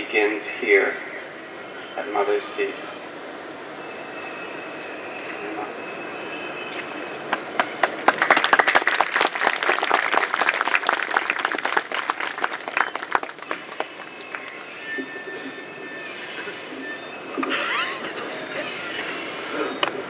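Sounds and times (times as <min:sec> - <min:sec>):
audience clapping: 0:07.3 - 0:14.8.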